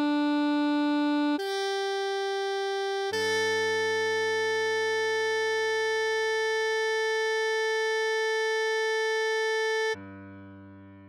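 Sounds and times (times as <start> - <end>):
electronic saxophone note: 0.0 - 10.0.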